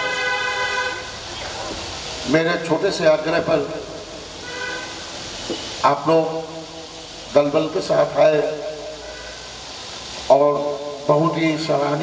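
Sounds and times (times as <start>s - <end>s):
steady horn-like tone: 0.0s - 1.2s, 4.4s - 5.0s.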